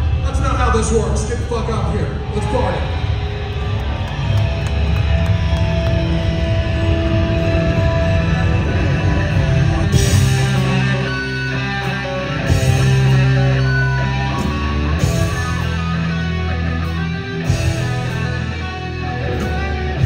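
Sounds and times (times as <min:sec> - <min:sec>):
heavy rock band playing: 0:00.0 - 0:20.0.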